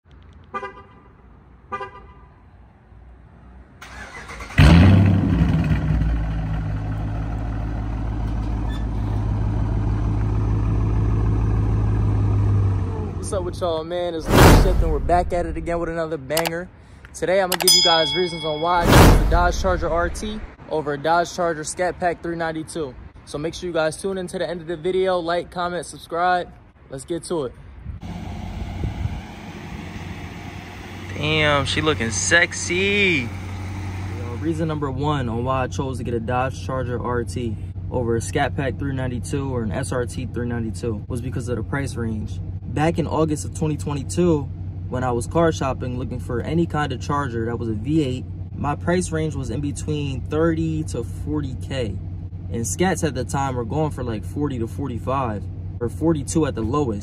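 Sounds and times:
car horn chirps: 0.5 - 2.3
car engine starting and idling: 3.8 - 16.6, 19.2 - 20.6, 28.0 - 57.0
car engine idling: 5.5 - 8.6, 9.2 - 13.8, 29.5 - 40.9.

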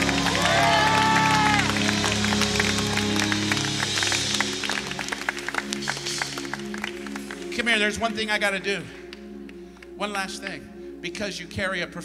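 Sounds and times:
people clapping and cheering: 0.0 - 7.8
held music chords: 0.0 - 11.6
drawn-out shout: 0.1 - 1.9.

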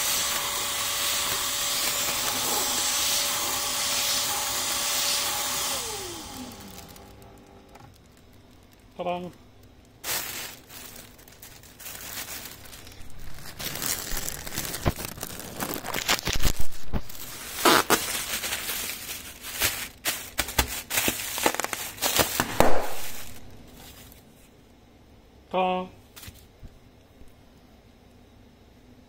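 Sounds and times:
bubble wrap crinkling: 0.0 - 24.5.

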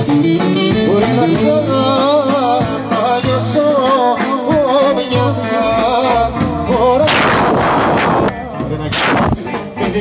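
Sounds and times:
live band music: 0.0 - 10.0
man singing: 0.0 - 10.0
loud noise bursts: 7.0 - 9.8.

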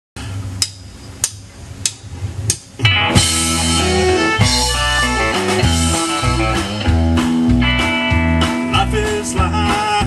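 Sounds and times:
drumsticks clicking together: 0.6 - 2.7.

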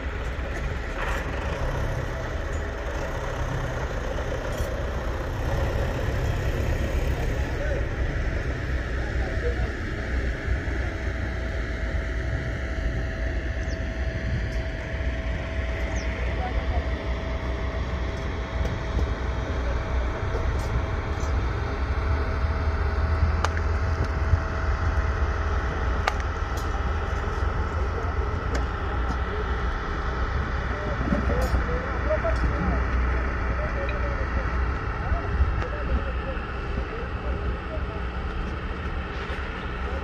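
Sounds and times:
tractor engine running: 0.0 - 40.0.

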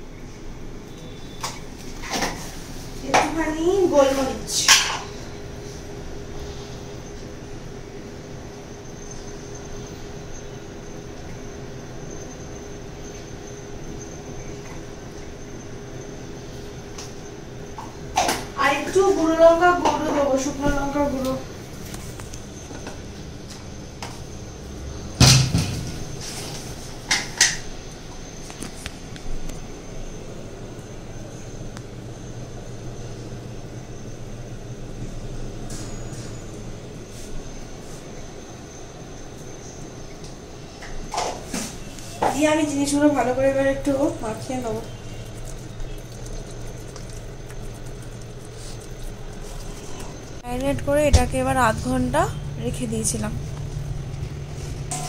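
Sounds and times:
low steady hum: 0.0 - 55.0.

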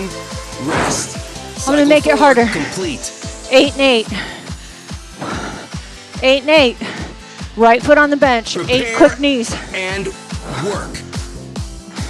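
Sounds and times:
upbeat workout music: 0.0 - 12.0.

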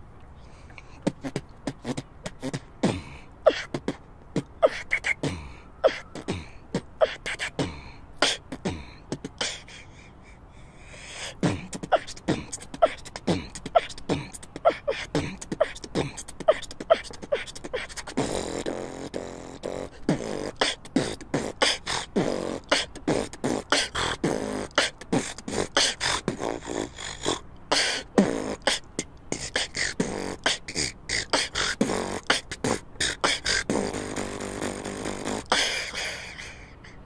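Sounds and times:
woman beatboxing: 0.7 - 9.8, 11.2 - 36.6.

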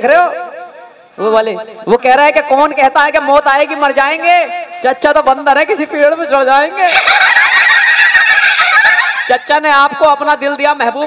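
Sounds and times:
audience laughing and cheering: 6.8 - 9.5.

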